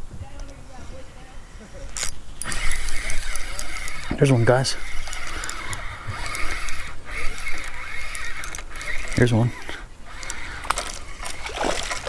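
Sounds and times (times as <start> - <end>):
fishing reel whirring and clicking: 1.9 - 12.0.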